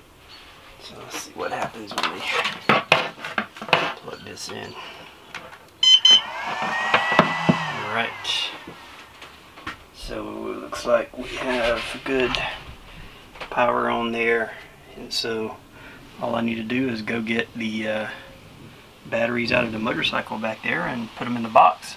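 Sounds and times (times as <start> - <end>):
short electronic beep: 5.8 - 6.2
charger startup tones: 5.8 - 8.4.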